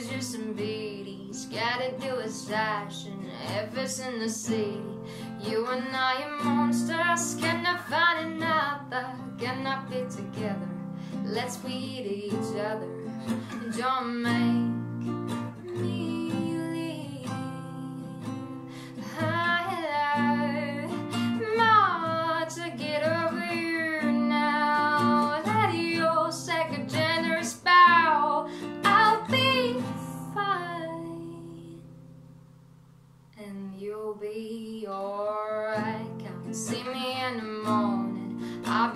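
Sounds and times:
woman singing: 0.0 - 32.0, 33.4 - 38.9
acoustic guitar strummed and picked: 0.0 - 33.1, 35.3 - 38.9.

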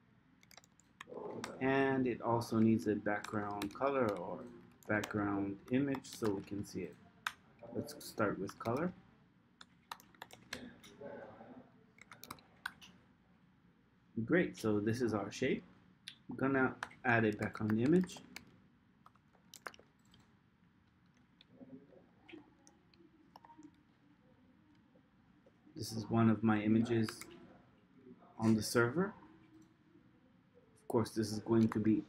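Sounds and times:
keyboard keys tapping: 0.4 - 1.6, 2.5 - 8.9, 9.6 - 10.9, 12.0 - 13.0, 16.8 - 20.3.

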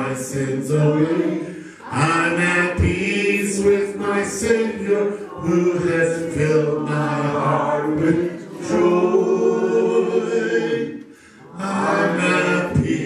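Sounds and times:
man singing a hymn: 0.0 - 11.0, 11.6 - 13.0
man breathing: 1.5 - 1.9, 11.0 - 11.5.

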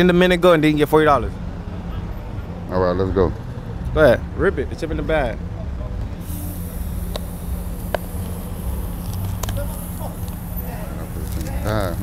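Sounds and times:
steady low hum: 5.3 - 12.0.

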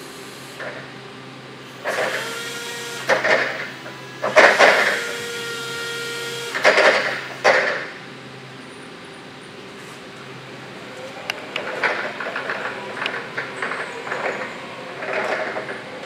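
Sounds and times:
forklift hydraulic pump whine: 0.0 - 16.0
loud hydraulic surges: 0.0 - 16.0.

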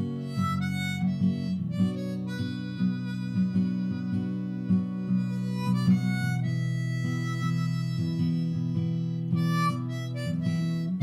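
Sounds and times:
harmonica chords: 0.0 - 11.0
strummed acoustic guitar: 0.0 - 11.0.

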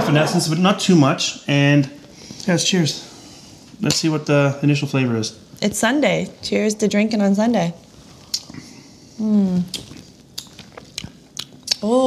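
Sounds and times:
wet lip smacks: 8.3 - 8.6, 9.7 - 11.8.

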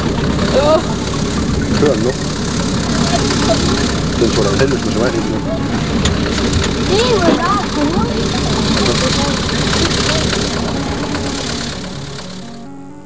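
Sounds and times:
engine driving through mud and water: 0.0 - 13.0.

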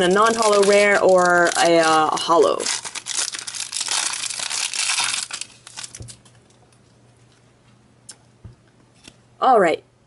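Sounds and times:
foil wrapper crinkling: 0.0 - 6.6.

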